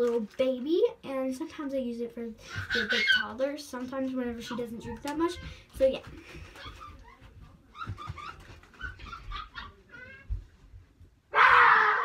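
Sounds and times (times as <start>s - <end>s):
child squealing and babbling: 2.5s - 3.3s
child shrieking: 11.3s - 12.0s.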